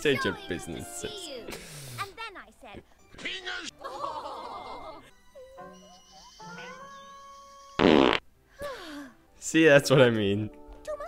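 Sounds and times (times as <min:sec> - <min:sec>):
fart sound effect: 0:07.8 - 0:08.2.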